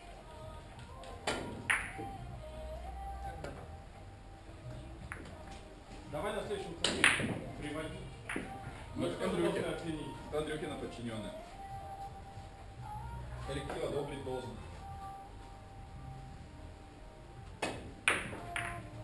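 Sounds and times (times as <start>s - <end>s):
billiard balls clacking: 1.1s - 2.1s, 5.1s - 5.6s, 6.8s - 8.6s, 17.5s - 19.0s.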